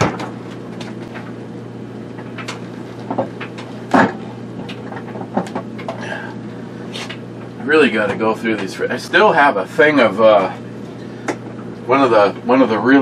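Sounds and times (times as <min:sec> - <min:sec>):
items knocking and clattering: 0:00.0 - 0:01.3, 0:02.2 - 0:06.0
steady low hum: 0:00.0 - 0:13.0.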